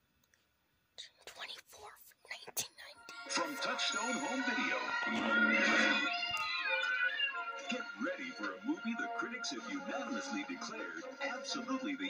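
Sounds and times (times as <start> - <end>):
breathy whispered voice: 1.0 - 5.8.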